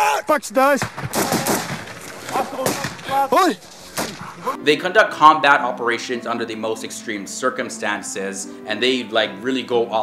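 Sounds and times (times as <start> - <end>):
soldiers shouting: 0.0 - 0.4, 1.2 - 3.6
rifle gunfire: 0.8 - 3.0.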